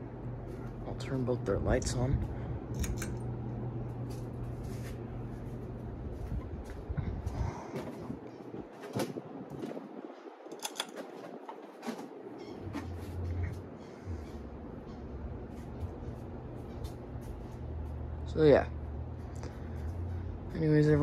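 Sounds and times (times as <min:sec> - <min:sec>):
ceiling fan motor hum: 0:00.0 - 0:21.0.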